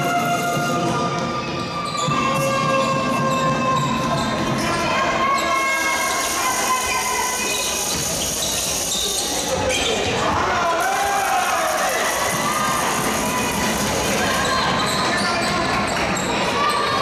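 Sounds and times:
echoing hall din: 0:00.0 - 0:08.4.

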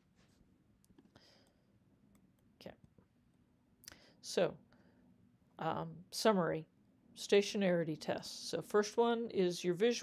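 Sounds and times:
soft breath: 0:01.0 - 0:01.8, 0:03.9 - 0:05.2.

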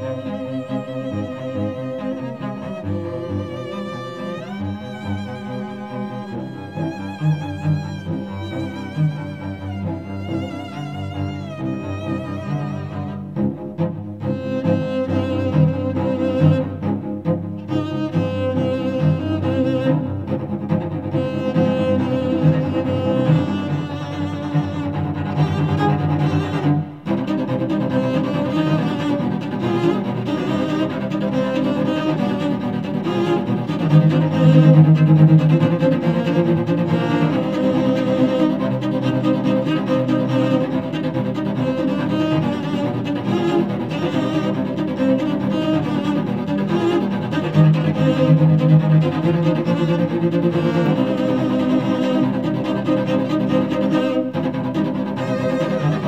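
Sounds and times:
cellos playing rock music: 0:09.2 - 0:56.0.

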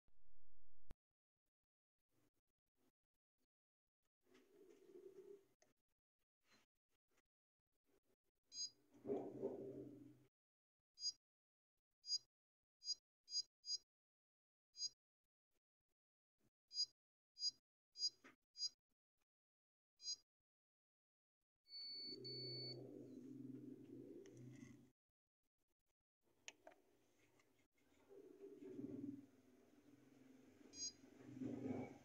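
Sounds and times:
photocopier high beep: 0:21.7 - 0:22.9.

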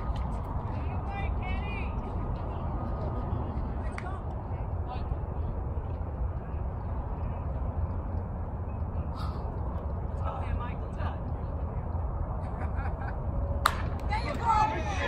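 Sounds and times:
low outdoor background rumble: 0:00.0 - 0:15.0.

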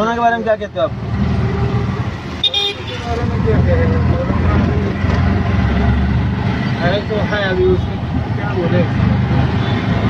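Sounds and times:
auto-rickshaw engine running: 0:00.0 - 0:10.0
horn toot: 0:02.4 - 0:03.1.

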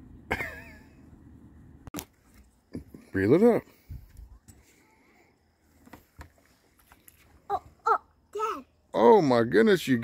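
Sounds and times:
child calling: 0:07.5 - 0:08.7.

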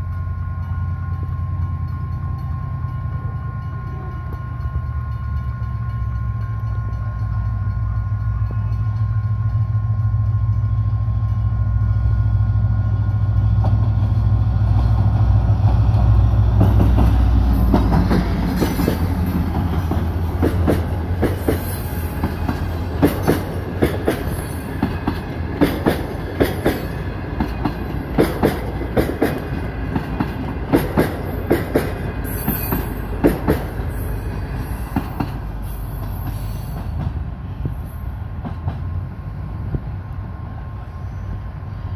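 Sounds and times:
diesel locomotive engine rumble: 0:00.0 - 0:41.9
train wheels clacking on rail joints: 0:00.1 - 0:11.5, 0:13.0 - 0:39.1.

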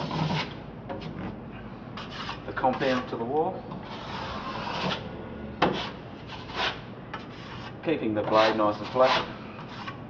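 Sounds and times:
broad knife scraping joint compound: 0:00.0 - 0:01.2, 0:02.0 - 0:10.0.

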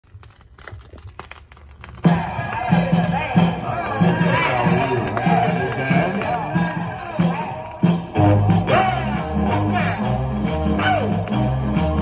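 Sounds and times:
vinyl stylus crackle and clicks: 0:00.0 - 0:03.2
record music with bass notes: 0:02.1 - 0:12.0.

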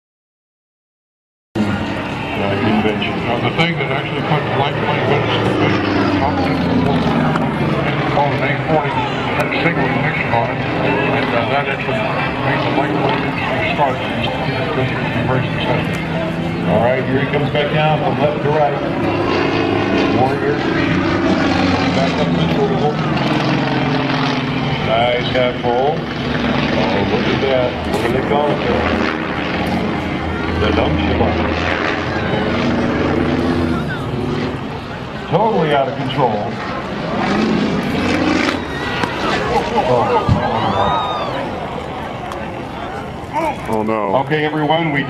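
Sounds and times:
propeller plane engine: 0:01.6 - 0:45.0
voices: 0:01.6 - 0:45.0.

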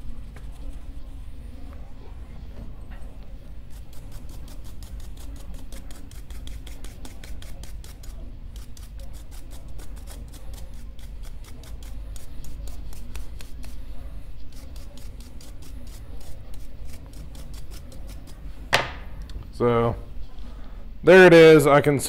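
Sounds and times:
brush scrubbing metal: 0:03.7 - 0:18.4.

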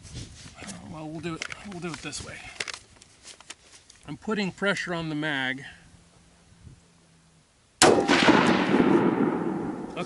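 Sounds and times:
rifle shot: 0:07.8 - 0:10.0.

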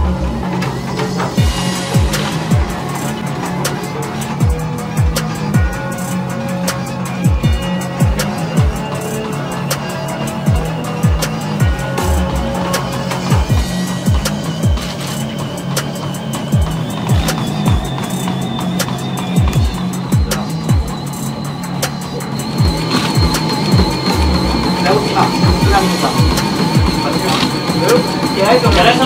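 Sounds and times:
deep bass hits: 0:00.0 - 0:02.8, 0:10.5 - 0:14.9
fast ticking hi-hats: 0:00.0 - 0:29.0.

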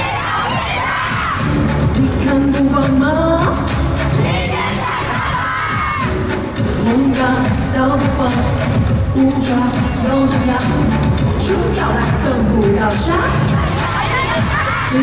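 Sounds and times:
crowd cheering: 0:00.0 - 0:01.7, 0:04.2 - 0:06.3
live pop music: 0:00.0 - 0:15.0.

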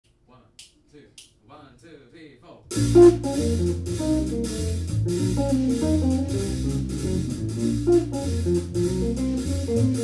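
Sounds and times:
finger snaps: 0:00.1 - 0:01.4.

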